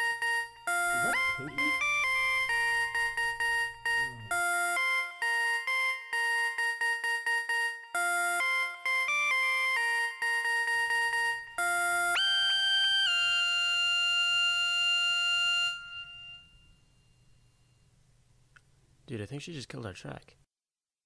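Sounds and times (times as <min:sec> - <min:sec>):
synthesizer bell-like melody: 0:00.0 - 0:17.5.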